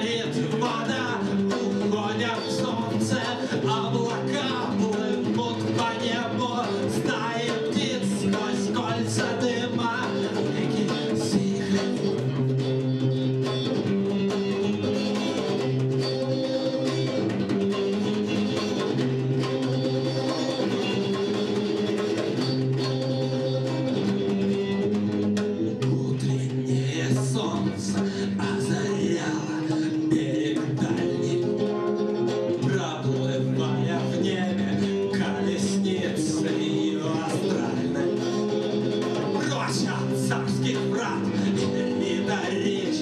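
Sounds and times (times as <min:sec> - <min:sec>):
hand drum strokes: 0:00.0 - 0:33.0
electric guitar: 0:00.0 - 0:43.0
live band playing: 0:00.0 - 0:43.0
person's voice: 0:25.8 - 0:31.7, 0:39.3 - 0:43.0.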